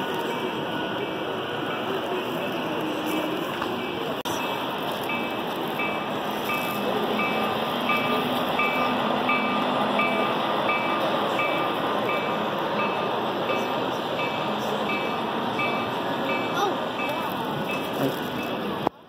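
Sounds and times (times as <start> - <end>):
crowd hubbub: 0.0 - 19.0
model train running on track: 0.0 - 19.0.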